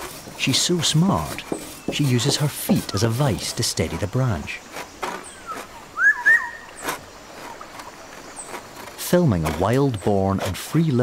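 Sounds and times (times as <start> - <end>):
hand saw cutting wood: 0.0 - 5.8.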